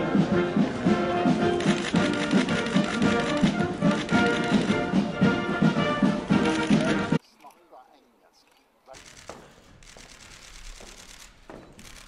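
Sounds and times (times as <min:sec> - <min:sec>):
brass band playing: 0:00.0 - 0:07.2.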